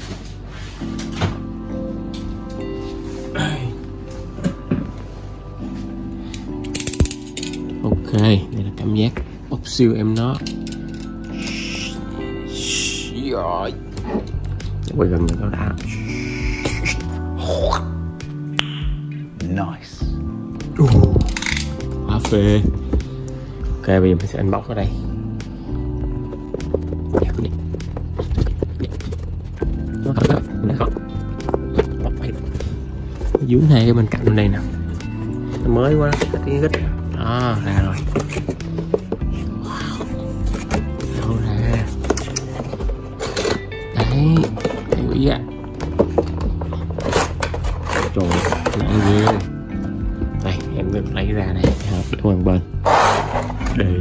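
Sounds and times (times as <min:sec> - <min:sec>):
background music: 0:00.0 - 0:54.0.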